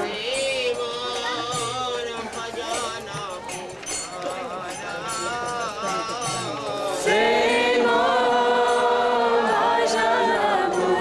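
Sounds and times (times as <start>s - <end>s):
group chanting in unison: 5.7s - 11.0s.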